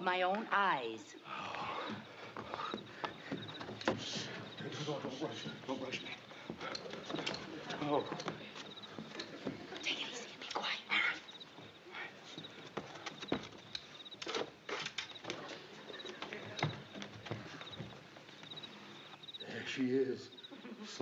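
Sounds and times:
crickets chirping: 0.0 - 21.0
footsteps scuffing on roof: 1.9 - 9.9, 11.4 - 18.8.

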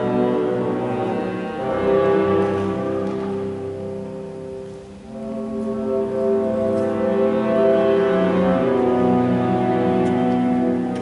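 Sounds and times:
orchestra playing held chords: 0.0 - 11.0.

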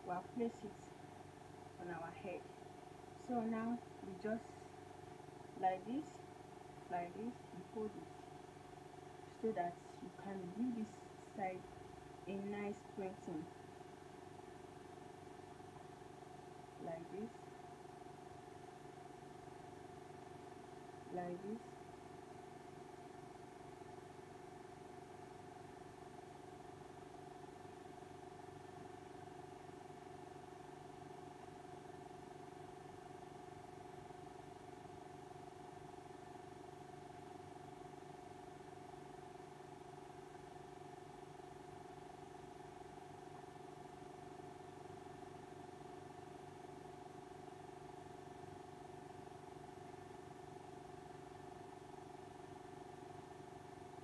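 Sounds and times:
faint steady hum: 0.0 - 54.0.

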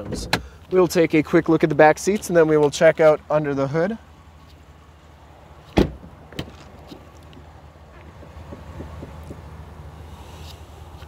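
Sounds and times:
truck door shutting: 0.0 - 0.6, 5.7 - 6.7.

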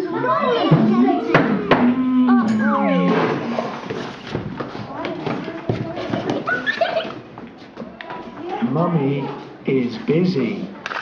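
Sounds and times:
high child's voice: 0.0 - 3.2
young children's voices: 0.0 - 3.6
footsteps on hard floor: 3.2 - 8.6.

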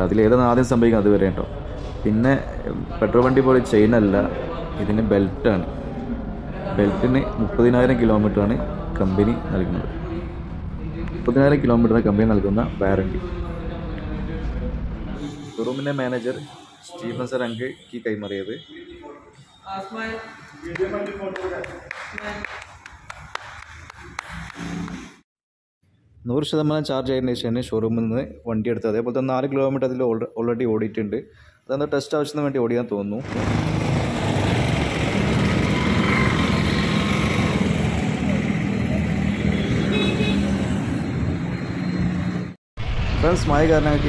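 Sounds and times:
street traffic and engines: 0.0 - 21.2, 33.2 - 42.6.

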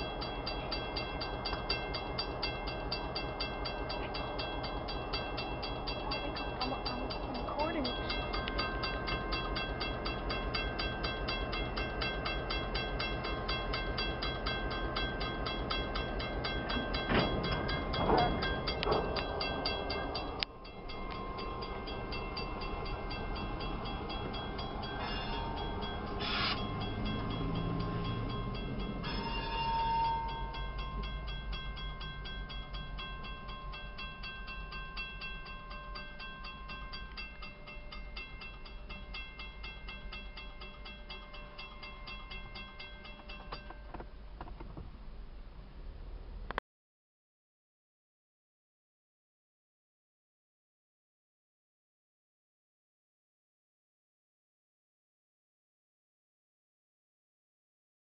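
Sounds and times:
crossing bell ringing: 0.0 - 44.4
freight train rumbling: 0.0 - 46.6.

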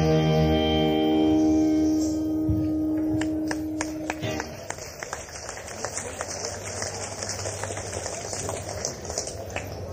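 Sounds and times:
low crowd noise: 0.0 - 9.9
tape hiss: 0.0 - 9.9
audience handclaps: 3.0 - 9.9.

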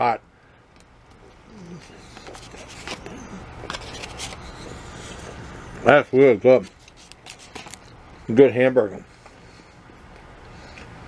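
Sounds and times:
man chewing food: 0.7 - 5.9, 9.1 - 11.0.

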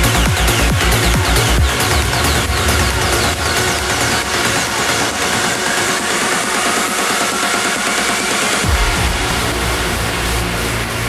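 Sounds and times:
electronic trance music: 0.0 - 11.0.

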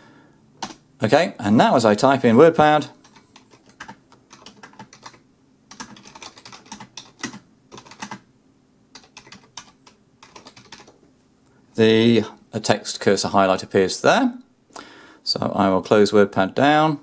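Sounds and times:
typing on computer keyboard: 0.6 - 0.8, 3.0 - 8.3, 8.9 - 11.0.

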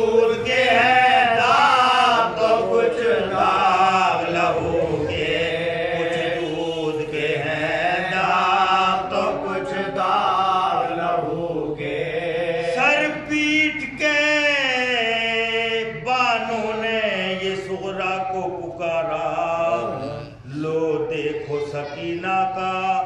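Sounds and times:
men's chorus singing: 0.0 - 23.0
man chanting lead: 19.0 - 23.0.

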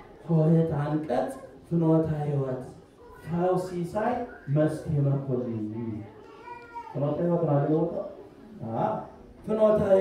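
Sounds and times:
faint high-pitched cry: 2.9 - 3.4, 4.2 - 7.2.

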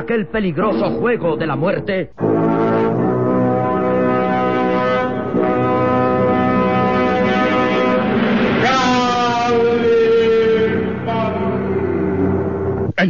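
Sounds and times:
loud held brass chords: 2.2 - 12.9.

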